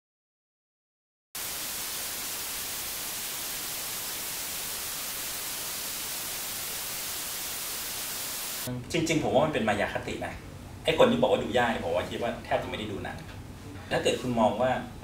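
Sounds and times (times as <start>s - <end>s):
static hiss: 1.4s - 8.7s.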